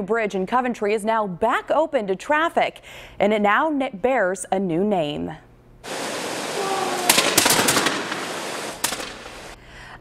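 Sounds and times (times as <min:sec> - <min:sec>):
musket shots: 0:06.7 - 0:09.6.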